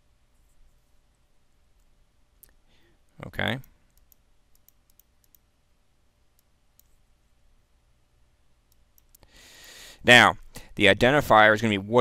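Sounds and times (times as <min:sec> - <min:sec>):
soft breathy hiss: 0:00.2 - 0:03.9, 0:09.2 - 0:10.9
keyboard and mouse clicks: 0:03.6 - 0:05.5, 0:08.7 - 0:09.3.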